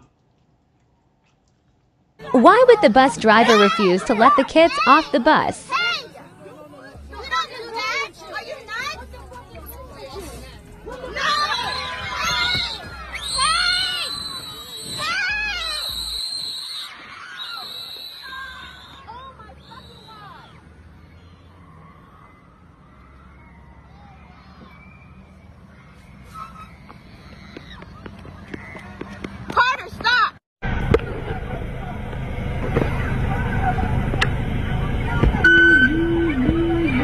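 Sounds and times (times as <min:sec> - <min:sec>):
children yelling and screaming: 0:02.2 - 0:29.0
idling engines and traffic: 0:18.5 - 0:29.6, 0:30.6 - 0:37.0.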